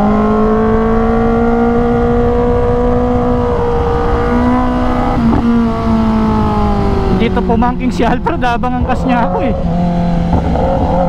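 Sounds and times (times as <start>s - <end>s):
motorcycle engine at high revs: 0.0s - 11.0s
wind rushing on microphone: 0.0s - 11.0s.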